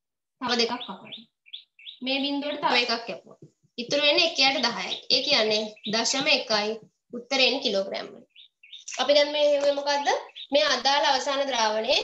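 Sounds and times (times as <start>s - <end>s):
woman speaking: 0.4s - 1.2s, 2.0s - 8.3s, 8.9s - 12.0s.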